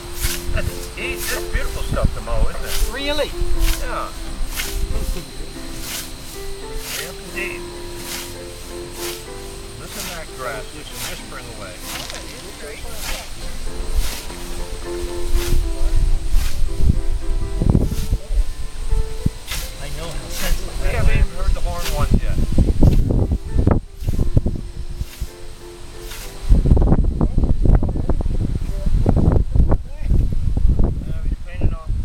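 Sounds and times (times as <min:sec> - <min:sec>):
scythe swishing through grass: 0:00.0 - 0:01.8, 0:02.5 - 0:16.8, 0:17.8 - 0:18.3, 0:19.4 - 0:20.8, 0:21.8 - 0:22.1, 0:22.8 - 0:23.2, 0:23.9 - 0:24.4, 0:25.0 - 0:26.5
loud low rumble: 0:00.0 - 0:25.1
voices murmuring: 0:00.0 - 0:32.0.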